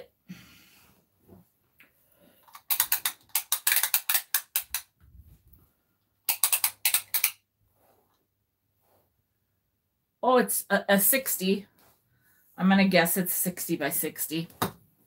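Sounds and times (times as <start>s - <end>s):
tape measure ratcheting clicks: 2.5s - 4.9s, 6.3s - 7.4s.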